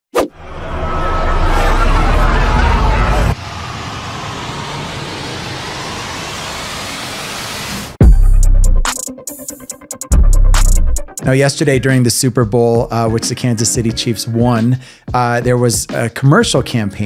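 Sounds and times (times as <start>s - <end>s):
whoosh rising in pitch: 0.1s - 8.0s
sharp hit: 0.2s - 9.0s
loud rumbling noise: 0.3s - 8.0s
intro music: 8.0s - 14.6s.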